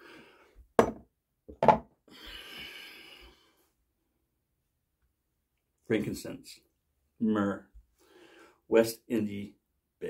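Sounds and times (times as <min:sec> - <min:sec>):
glass bottle knocking on hard surface: 0:00.8 - 0:01.9.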